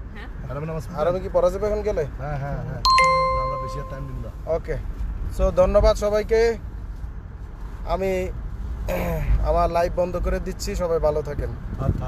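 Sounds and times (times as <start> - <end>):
road and tyre rumble: 0.0 - 12.0
man speaking: 2.9 - 4.3.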